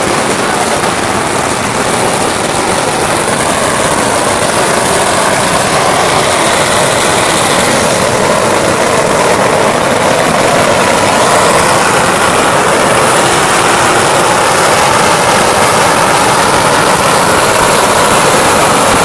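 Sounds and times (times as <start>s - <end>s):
firecrackers crackling: 0.0s - 19.0s.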